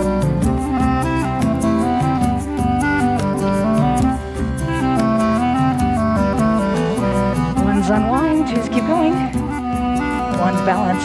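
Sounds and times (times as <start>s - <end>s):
folk band playing dance tune: 0.0s - 11.0s.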